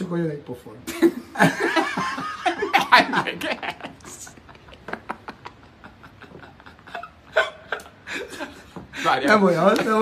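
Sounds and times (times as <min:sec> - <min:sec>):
man laughing breathlessly: 0:05.6 - 0:09.2.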